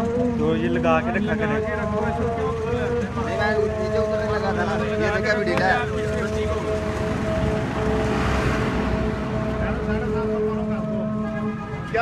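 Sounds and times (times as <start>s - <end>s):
steady traffic hum: 0.0s - 12.0s
vehicle engines running: 0.0s - 12.0s
vehicle passing: 3.0s - 12.0s.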